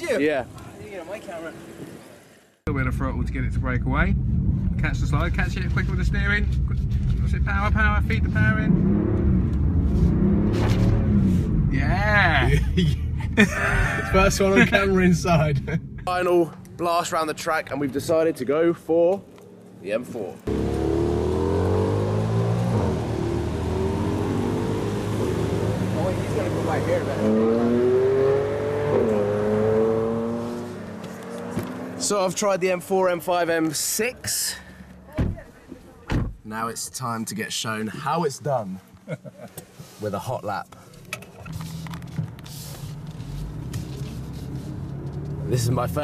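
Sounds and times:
car engine accelerating: 2.7 - 16.2, 20.5 - 32.2, 41.5 - 46.0.

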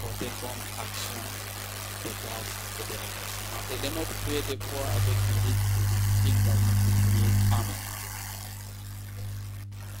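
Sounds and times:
low electrical hum: 0.0 - 10.0
microphone hiss: 0.0 - 10.0.

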